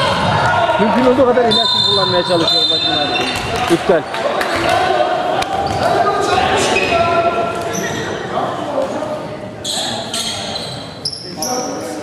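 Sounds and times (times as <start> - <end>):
voices in echoing hall: 0.0 - 12.0.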